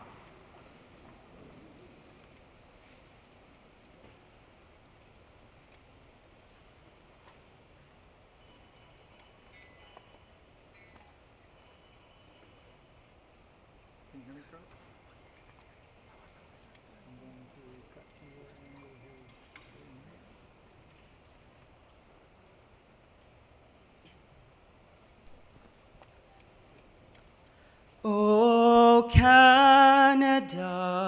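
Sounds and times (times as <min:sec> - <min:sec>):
faint clicks: 0:00.0 - 0:28.0
faint murmur: 0:14.1 - 0:22.6.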